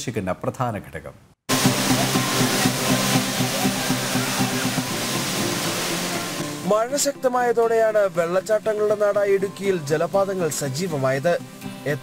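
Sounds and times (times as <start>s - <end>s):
waterfall pouring: 1.5s - 6.8s
background music: 1.5s - 12.0s
man talking: 6.6s - 12.0s.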